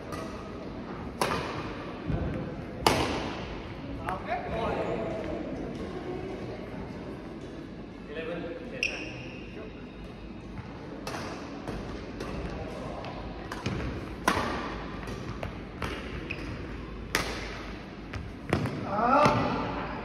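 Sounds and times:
rackets striking shuttlecock: 0:02.8 - 0:03.4, 0:13.5 - 0:17.8.

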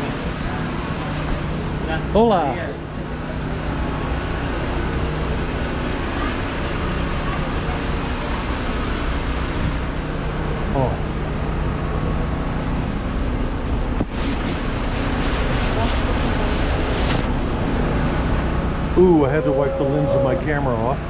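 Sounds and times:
street noise: 0:00.0 - 0:21.0
vehicle engines idling: 0:00.0 - 0:21.0
person calling out: 0:19.0 - 0:20.7.

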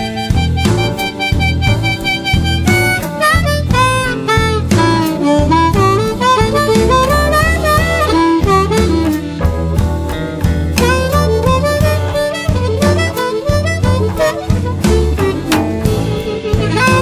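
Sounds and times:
bass guitar: 0:00.0 - 0:17.0
blues harmonica solo: 0:00.0 - 0:17.0
drums: 0:00.0 - 0:17.0.

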